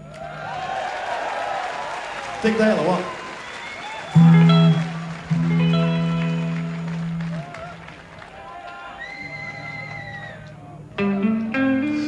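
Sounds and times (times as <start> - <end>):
thin sustained guitar notes: 4.2 - 7.5, 10.4 - 12.0
loud held guitar chord: 4.2 - 7.6.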